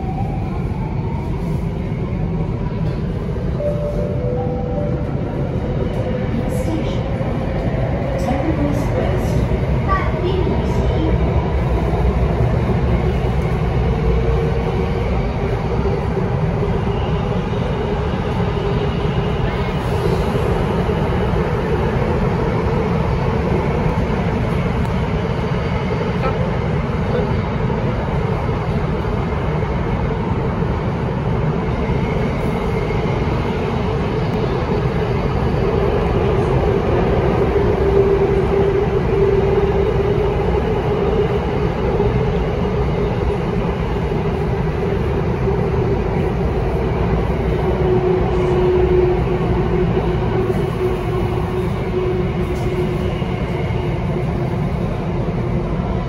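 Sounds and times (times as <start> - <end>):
metro wheels rumbling: 0.0 - 56.0
train hum: 0.0 - 56.0.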